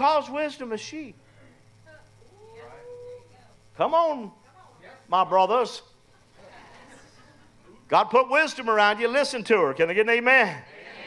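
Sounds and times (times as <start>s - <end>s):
faint voice-like hum: 1.2s - 5.1s.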